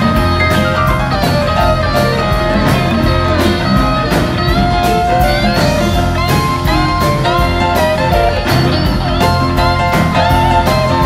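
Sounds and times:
bass: 0.0s - 11.0s
drums and cymbals: 0.0s - 11.0s
electric guitar lead: 0.0s - 11.0s
keyboards: 0.0s - 11.0s.

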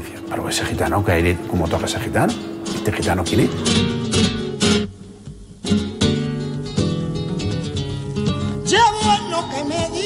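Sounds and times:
guitars strumming chords: 0.0s - 10.0s.

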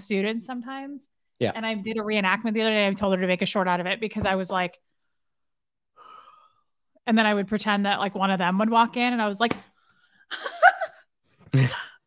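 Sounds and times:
person breathing or sighing: 11.4s - 12.0s.

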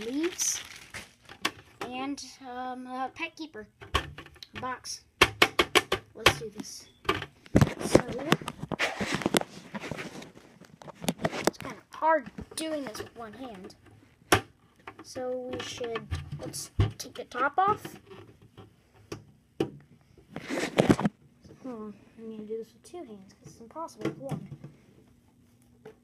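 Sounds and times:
packaging rustling: 0.0s - 1.8s
plastic lid scraping and rustling: 7.1s - 13.8s, 20.3s - 21.2s.

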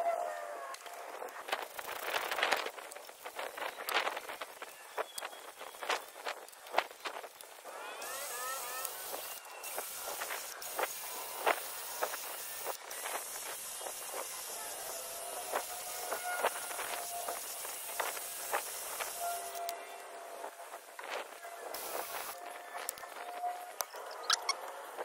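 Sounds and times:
steady hiss: 0.9s - 22.9s.

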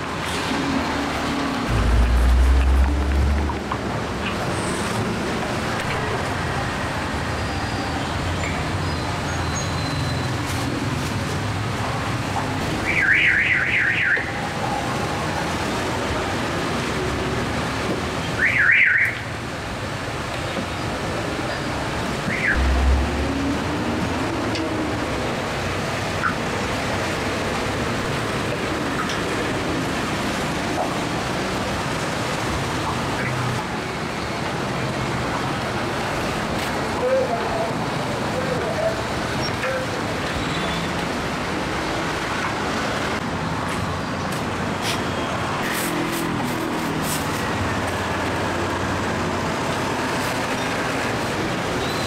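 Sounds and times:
street traffic: 0.0s - 52.0s
high warbling electronic tone: 1.7s - 3.8s, 22.4s - 23.5s.

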